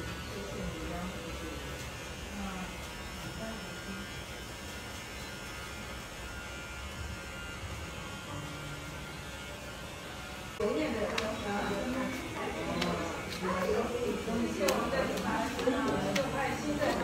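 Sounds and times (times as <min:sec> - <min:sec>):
electric hair clippers buzzing: 0:00.0 - 0:17.0.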